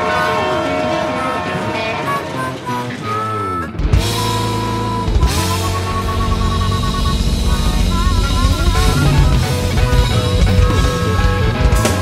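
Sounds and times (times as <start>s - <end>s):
train horn: 0.0s - 3.7s.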